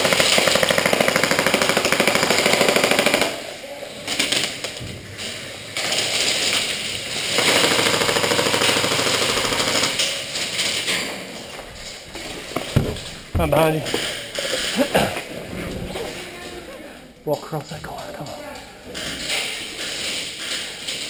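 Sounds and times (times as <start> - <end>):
airsoft rifle firing full-auto: 0.0 - 3.5, 7.2 - 10.1.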